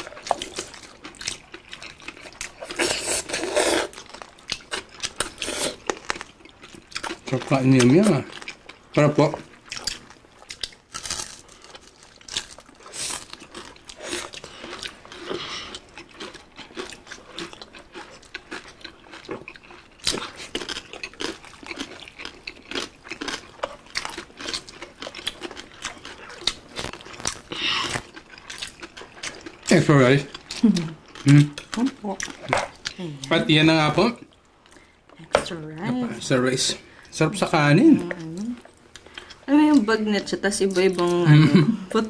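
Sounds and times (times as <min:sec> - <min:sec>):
crunching while chewing: 0:00.0 - 0:33.0, 0:38.6 - 0:39.9
wet chewing sounds: 0:00.0 - 0:33.4, 0:37.8 - 0:41.3.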